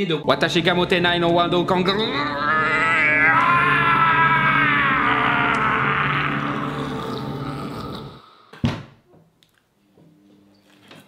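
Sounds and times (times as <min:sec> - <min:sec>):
man roaring in frustration: 0:01.7 - 0:08.2.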